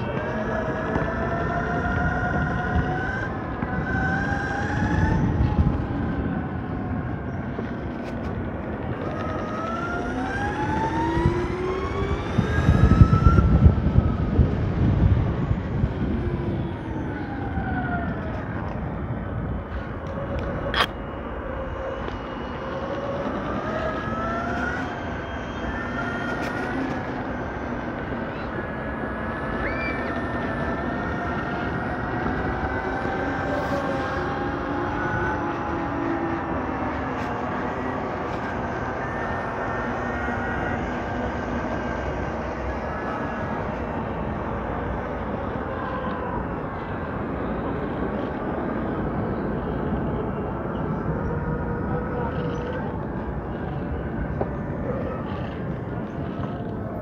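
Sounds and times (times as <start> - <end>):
electric motors whining: 0.0 - 57.0
wind and tyre rumble: 0.0 - 57.0.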